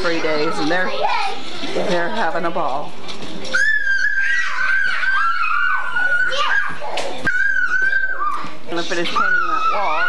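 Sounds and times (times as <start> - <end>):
child's high-pitched squeal: 3.5 - 8.6.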